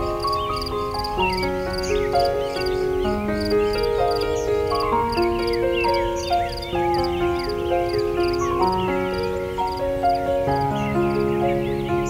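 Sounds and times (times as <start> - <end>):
birds chirping and trilling: 0.0 - 12.0
slow piano music: 0.0 - 12.0.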